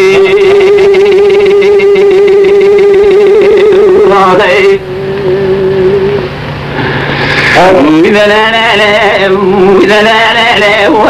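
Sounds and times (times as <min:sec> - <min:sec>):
man singing unaccompanied: 0:00.0 - 0:06.3, 0:07.5 - 0:11.0
low steady hum: 0:00.0 - 0:11.0.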